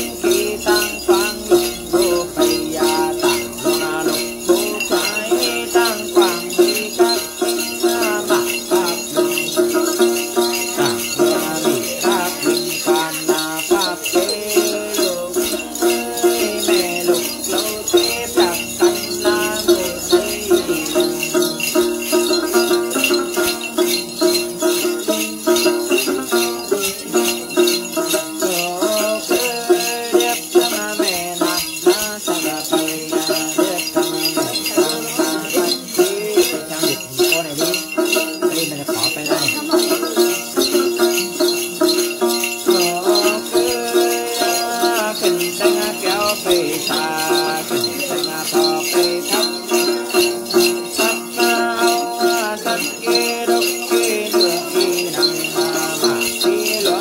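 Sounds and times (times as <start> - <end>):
metal jingle chains shaken: 0.0 - 57.0
wavering chanted voice: 0.0 - 57.0.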